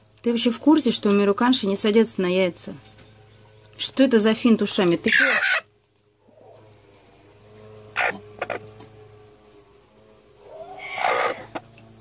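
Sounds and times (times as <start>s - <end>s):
hen squawking harshly: 5.0s - 5.7s, 7.9s - 8.7s, 10.4s - 11.6s.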